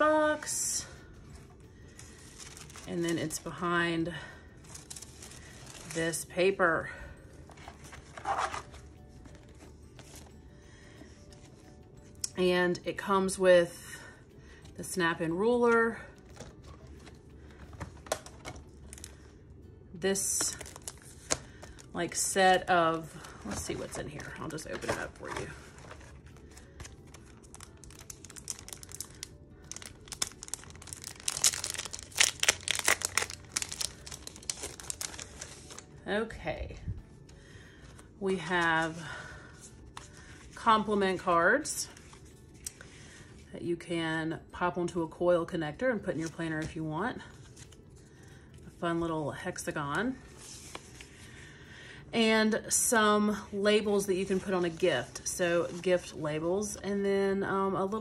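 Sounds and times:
faint background music: 0.0 - 58.0
plastic sleeve crinkling: 1.3 - 3.6, 4.6 - 6.3, 7.5 - 10.3, 20.4 - 36.0
tissue paper rustling: 1.3 - 3.7, 4.6 - 6.3, 7.4 - 10.3, 22.9 - 36.0, 50.2 - 51.2
planner handled in cardboard box: 2.0 - 2.9, 7.5 - 10.3, 23.3 - 26.4.

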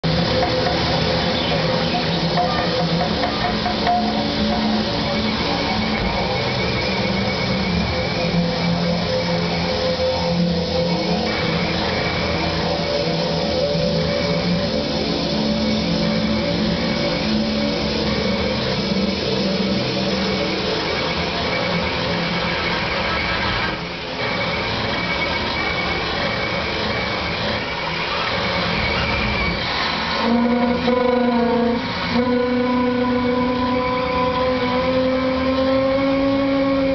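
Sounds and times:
electronic noise music: 0.0 - 36.9.

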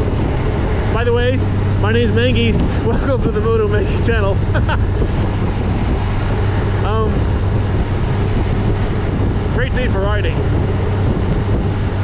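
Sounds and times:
motorcycle engine humming: 0.0 - 12.0
wind rush: 0.0 - 12.0.

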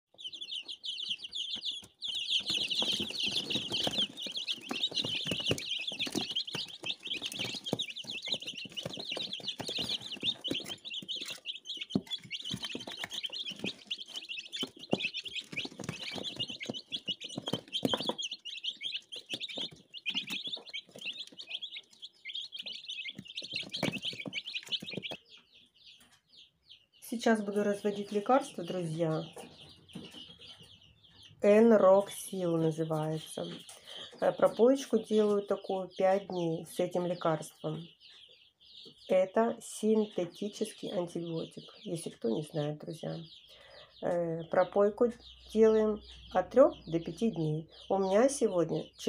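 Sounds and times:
chicks peeping: 0.1 - 49.0.

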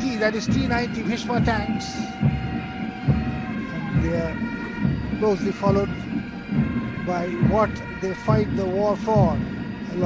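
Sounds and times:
commentator speaking: 0.0 - 2.2, 5.1 - 6.1, 7.0 - 10.0.

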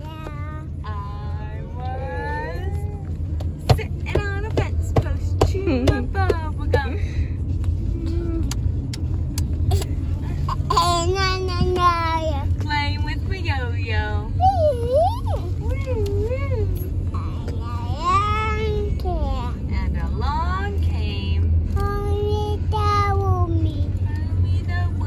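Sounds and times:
car road rumble: 0.0 - 25.0.

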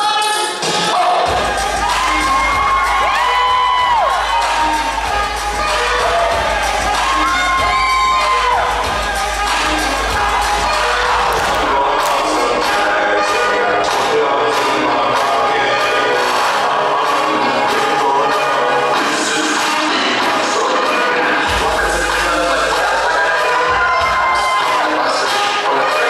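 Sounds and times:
loud dance music: 0.0 - 26.0
audience cheering: 0.9 - 13.5, 21.7 - 25.8.

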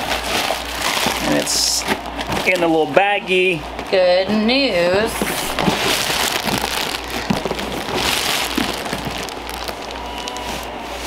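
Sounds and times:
plastic bag crinkling: 0.0 - 4.0, 5.0 - 11.0.

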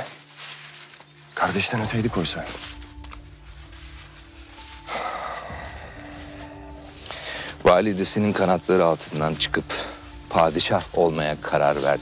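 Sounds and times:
dramatic sustained music: 0.0 - 12.0.

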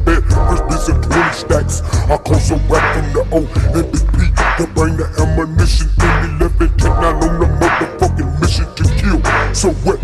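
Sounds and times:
slowed rap vocals over heavy bass: 0.0 - 10.0.

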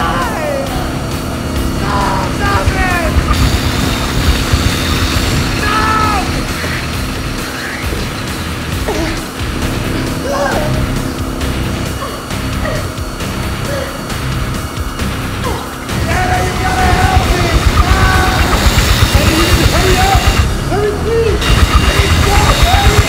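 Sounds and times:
motorcycle engine running: 0.0 - 23.0
tense film score: 0.0 - 23.0
man crying out: 5.5 - 6.6, 10.2 - 11.0, 13.6 - 14.1.

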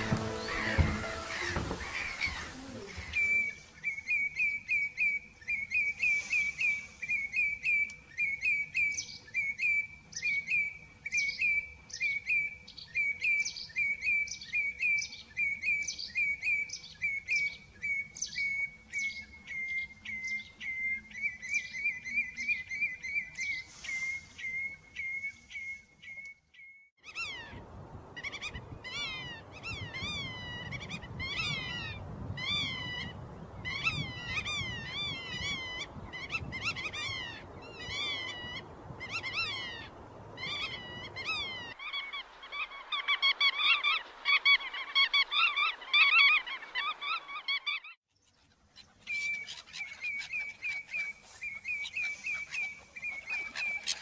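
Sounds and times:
arching bird call notes: 0.0 - 3.5
wading birds calling: 0.0 - 8.6, 27.0 - 54.0
background noise: 0.0 - 54.0.

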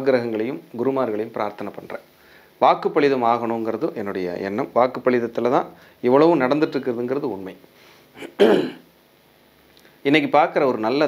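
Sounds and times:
man clearing his throat: 8.2 - 8.8.

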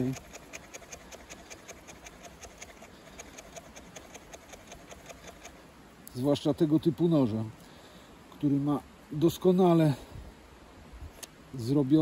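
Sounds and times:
knife shaving wood: 0.0 - 5.6.

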